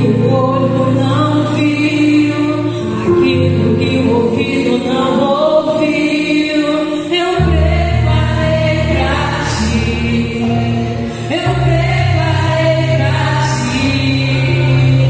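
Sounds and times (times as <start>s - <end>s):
woman singing through pa: 0.0s - 15.0s.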